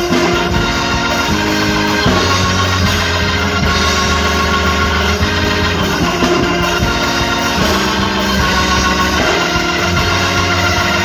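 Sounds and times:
electronic keyboard organ chords: 0.0s - 11.0s.

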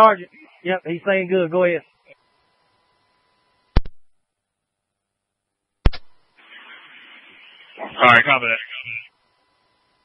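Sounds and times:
radio static hiss: 0.0s - 4.0s, 5.8s - 10.0s
man talking over radio: 6.5s - 9.2s.

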